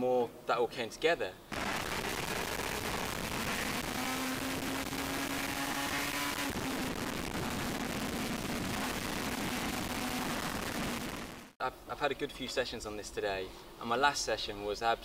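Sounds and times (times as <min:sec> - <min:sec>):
two-stroke engine at high revs: 0:01.5 - 0:11.4.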